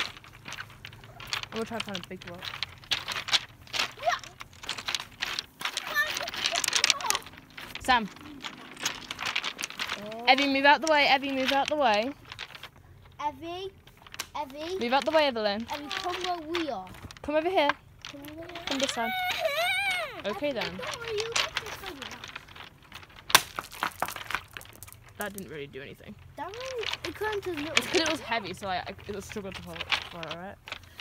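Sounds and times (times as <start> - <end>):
pebbles clicking and crunching: 0.0 - 31.0
rock cracking on stones: 0.0 - 31.0.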